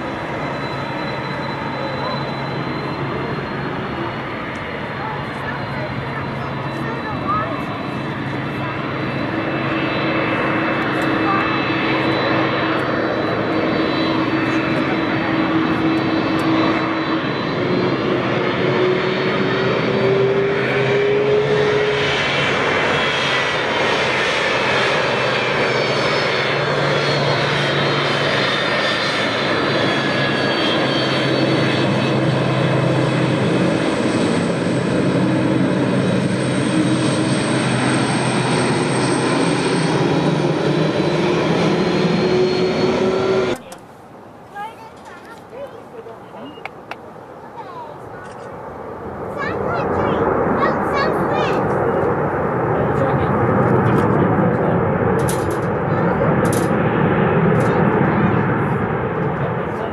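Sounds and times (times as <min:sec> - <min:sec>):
jet engines whining: 0:00.0 - 0:59.9.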